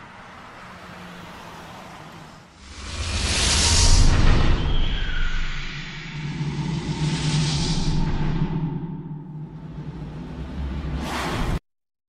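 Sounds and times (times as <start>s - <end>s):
low rumbling drone: 2.6s - 11.6s.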